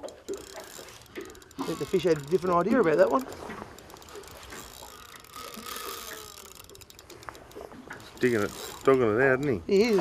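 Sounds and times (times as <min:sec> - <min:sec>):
fishing reel clicking rapidly: 0:00.0 - 0:10.0.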